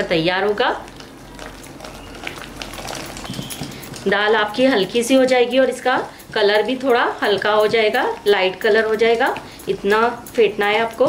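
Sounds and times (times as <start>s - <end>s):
hand beating batter in steel bowl: 0.3s - 11.0s.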